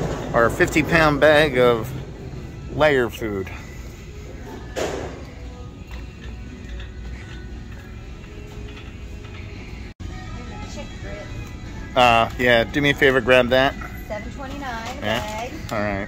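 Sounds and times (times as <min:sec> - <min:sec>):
faint background music: 0:00.0 - 0:16.0
store hum: 0:00.0 - 0:16.0.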